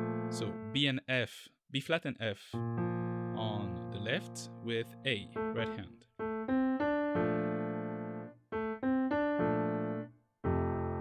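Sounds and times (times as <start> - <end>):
piano playing: 0.0 - 0.9, 2.5 - 11.0.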